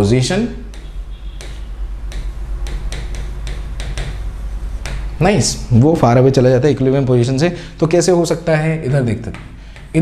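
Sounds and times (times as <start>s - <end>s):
stylus tapping on whiteboard: 0.6s - 5.2s, 9.2s - 10.0s.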